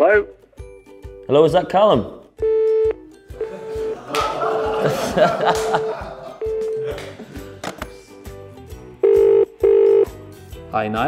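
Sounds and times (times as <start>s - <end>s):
telephone ringback tone: 9.0s - 10.1s.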